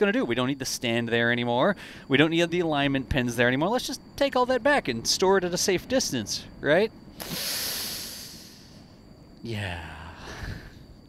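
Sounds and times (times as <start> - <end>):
person exhaling breathily: 7.2 - 8.8, 9.9 - 10.8.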